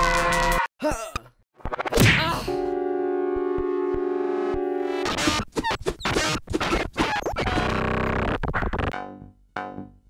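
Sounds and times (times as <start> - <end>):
glitchy electronic music: 3.4 - 9.0.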